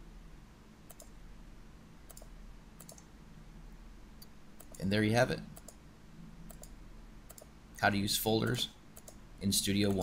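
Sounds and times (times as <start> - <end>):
computer mouse clicks: 0.9 - 1.2, 2.1 - 3.1, 4.2 - 4.8, 5.5 - 5.8, 6.5 - 7.5, 9.0 - 9.2.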